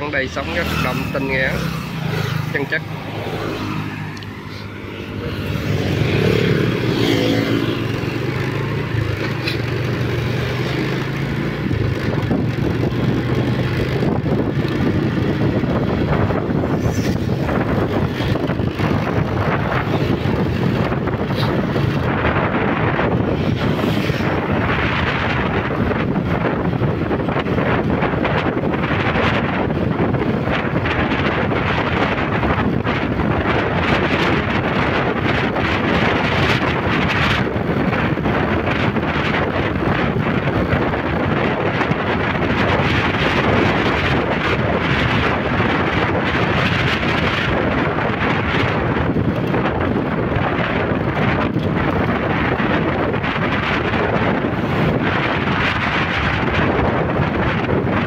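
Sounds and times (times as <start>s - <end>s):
wind rushing over microphone: 0.0s - 58.0s
motorbike engine running: 0.5s - 58.0s.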